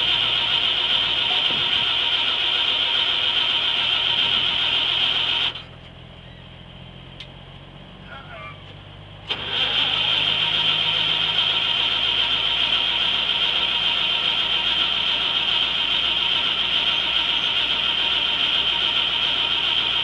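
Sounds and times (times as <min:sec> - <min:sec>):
engine starter cranking: 0:09.3 - 0:19.8.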